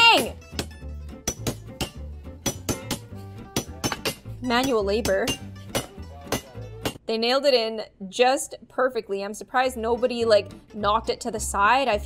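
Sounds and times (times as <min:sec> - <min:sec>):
background music: 0:00.0 - 0:12.0
mauls striking metal spikes: 0:00.5 - 0:07.0.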